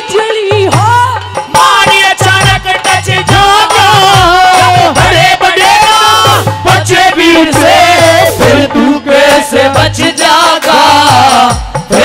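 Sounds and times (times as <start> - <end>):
woman singing into microphone: 0.0 - 2.6
low drum beat: 0.6 - 9.0.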